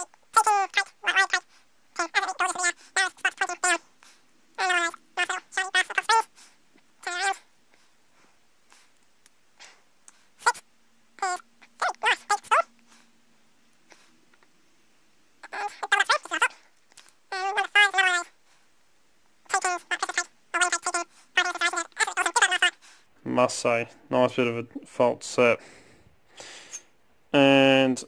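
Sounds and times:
faint low hum: 0.0s - 28.0s
pet animal high-pitched calls: 4.6s - 6.3s, 11.2s - 12.7s.

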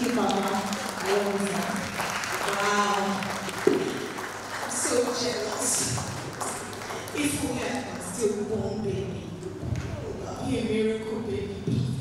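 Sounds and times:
light applause: 0.0s - 8.0s.

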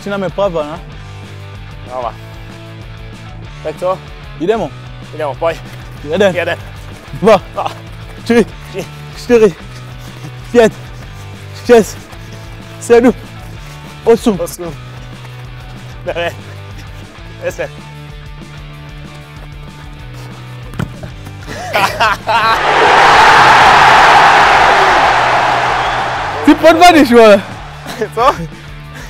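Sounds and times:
background music: 0.0s - 29.0s
players shouting: 22.3s - 28.3s.

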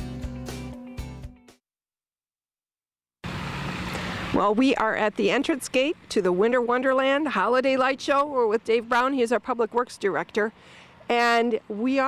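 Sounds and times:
road traffic: 3.2s - 12.0s.

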